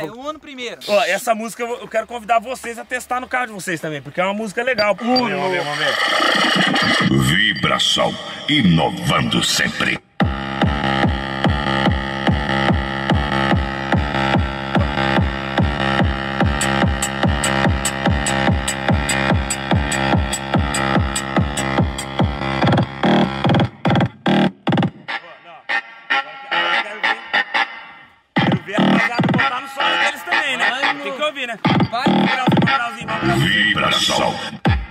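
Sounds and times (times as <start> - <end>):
electronic music with heavy bass: 0.8 - 1.3, 4.7 - 34.9.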